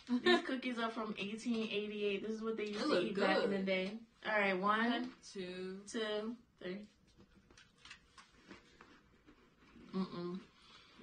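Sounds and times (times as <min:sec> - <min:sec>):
person humming mm: 0:09.8 - 0:10.6.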